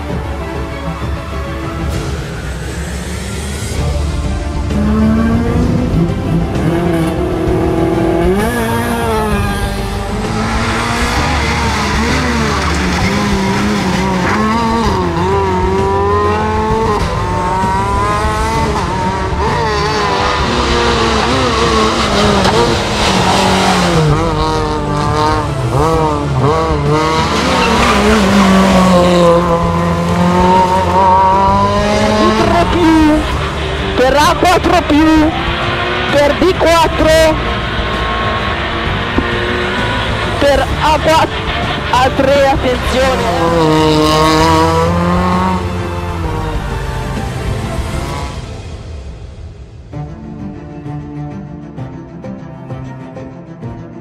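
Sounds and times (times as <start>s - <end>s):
rally car engine revving: 0.0s - 49.9s
tyres squealing: 26.9s - 30.0s.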